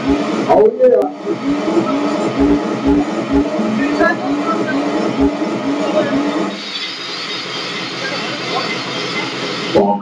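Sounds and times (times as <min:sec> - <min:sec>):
steady rushing noise: 0:00.0 - 0:07.4.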